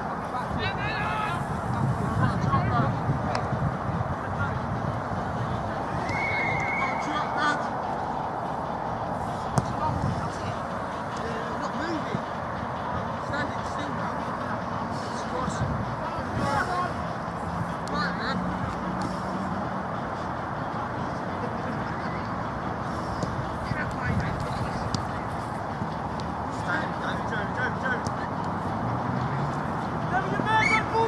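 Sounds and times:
steady rushing background noise: 0.0s - 31.0s
distant players shouting: 5.8s - 8.2s, 30.0s - 31.0s.

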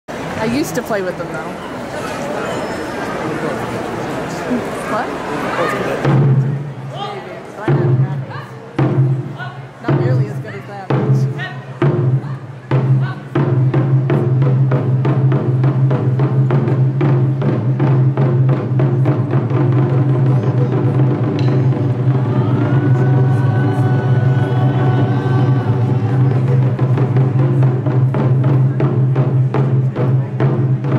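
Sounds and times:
taiko drums: 6.0s - 6.8s, 7.6s - 30.9s.

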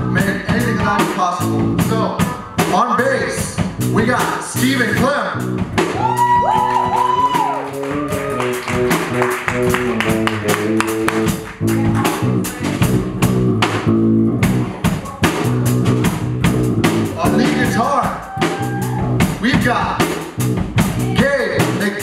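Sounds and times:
drum strokes: 0.0s - 22.0s
electric bass line: 0.0s - 22.0s
electric guitar: 5.5s - 15.0s.

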